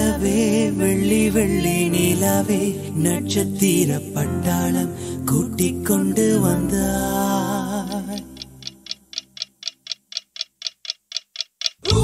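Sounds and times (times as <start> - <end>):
clock-like ticking: 7.9 - 12.0.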